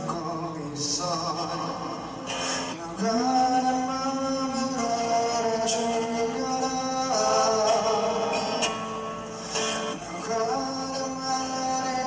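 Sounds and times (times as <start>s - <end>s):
acoustic guitar: 0.0s - 12.0s
man singing slow ballad: 0.0s - 12.0s.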